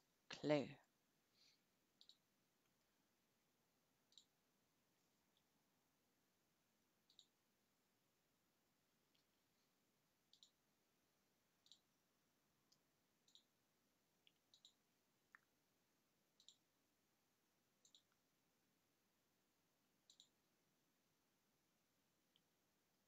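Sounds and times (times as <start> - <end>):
computer mouse clicks: 2.0 - 2.8, 4.1 - 4.4, 7.0 - 7.4, 10.2 - 10.6, 11.6 - 11.9, 12.7 - 13.6, 14.2 - 15.5, 16.3 - 16.7, 17.8 - 18.2, 20.0 - 20.4.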